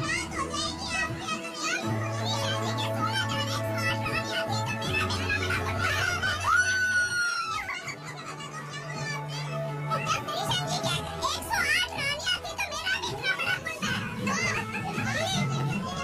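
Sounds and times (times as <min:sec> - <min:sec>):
music playing: 0:00.0 - 0:16.0
women chattering and laughing: 0:04.8 - 0:11.5.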